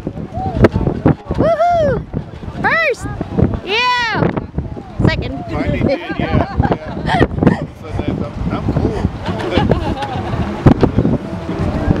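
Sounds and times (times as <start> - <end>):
wind buffeting microphone: 0.0 - 12.0
people talking indistinctly: 0.4 - 10.4.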